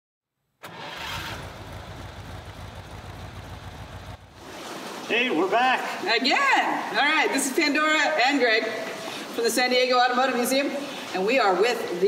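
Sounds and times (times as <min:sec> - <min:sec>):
car engine running: 0:00.6 - 0:04.5.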